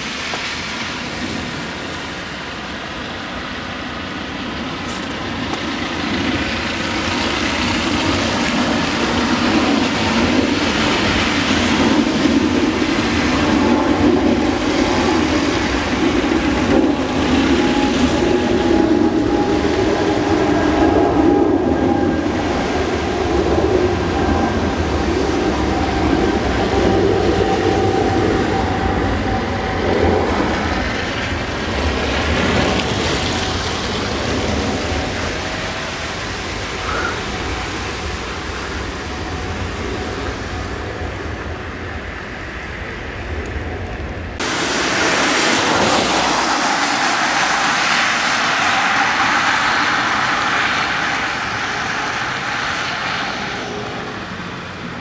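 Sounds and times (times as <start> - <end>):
loud steady rumble: 1.0 - 55.0.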